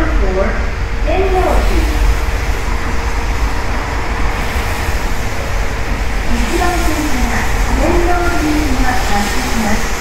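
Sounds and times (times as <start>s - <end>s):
rail and road traffic rumble: 0.0s - 10.0s.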